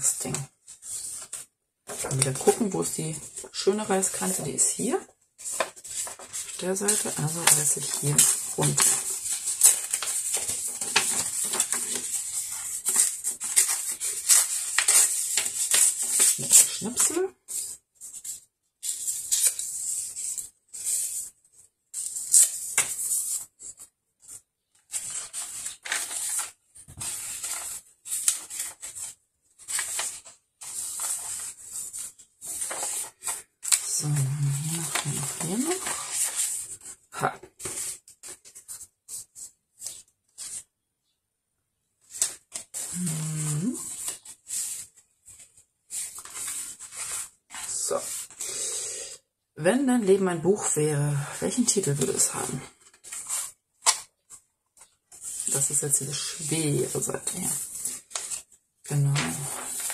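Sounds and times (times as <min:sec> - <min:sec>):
pages being turned: 0:00.1 - 0:04.6, 0:05.4 - 0:40.7, 0:42.0 - 0:48.7, 0:51.6 - 0:59.9
paper tearing and rustling: 0:05.4 - 0:21.1, 0:24.8 - 0:39.2, 0:42.1 - 0:48.5, 0:52.7 - 0:55.6, 0:57.2 - 0:59.9.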